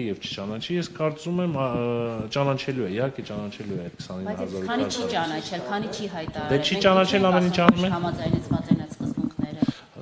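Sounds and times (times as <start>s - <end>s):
man speaking: 0.0s - 8.2s.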